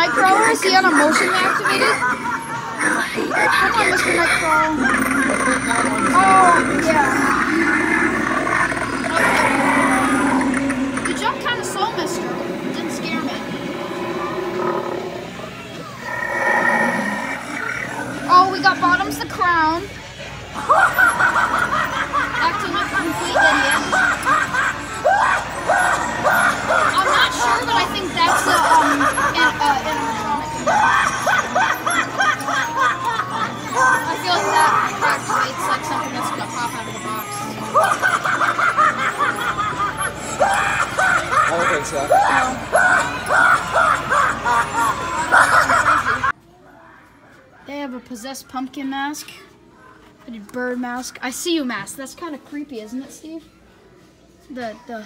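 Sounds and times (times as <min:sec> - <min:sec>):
toy clown cackling through speaker: 0:00.0 - 0:12.7, 0:20.5 - 0:35.6, 0:36.9 - 0:46.3
recorded monster growl-roar: 0:02.8 - 0:15.4, 0:16.0 - 0:18.8.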